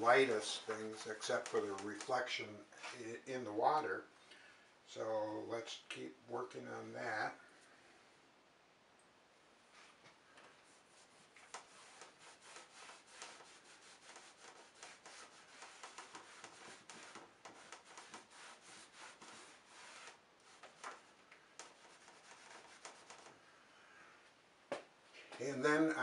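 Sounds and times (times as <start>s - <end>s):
rag rubbing on canvas: 0.0s - 2.2s, 10.7s - 23.3s.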